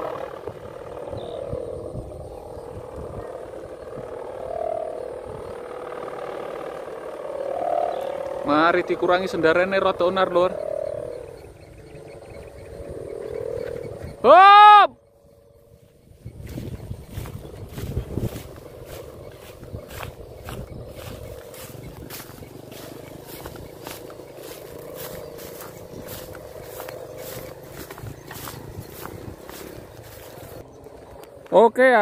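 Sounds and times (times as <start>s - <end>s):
kite hummer drone: 0.0s - 32.0s
wind rumble on microphone: 0.0s - 32.0s
crunching footsteps: 15.8s - 31.5s.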